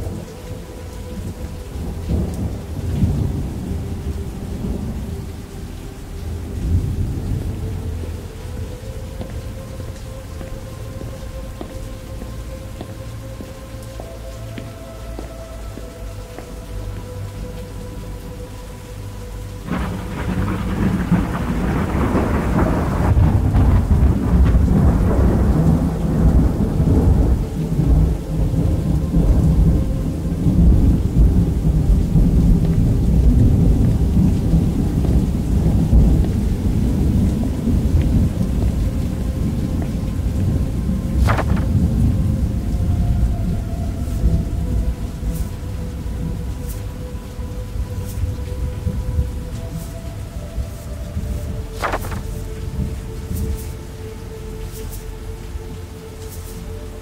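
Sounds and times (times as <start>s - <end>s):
thunder rumble: 0.0s - 14.3s, 14.9s - 57.0s
rain: 0.0s - 57.0s
soft music with held tones: 0.0s - 57.0s.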